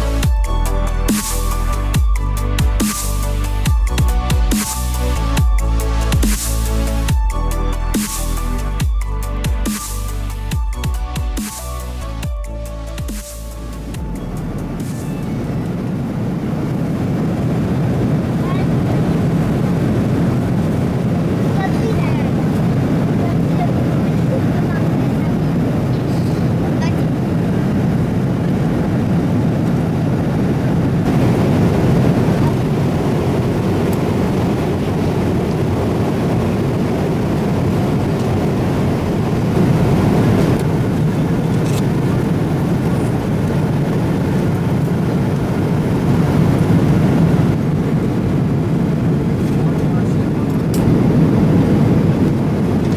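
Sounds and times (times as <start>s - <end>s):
airliner cabin engine drone: 0.0s - 52.9s.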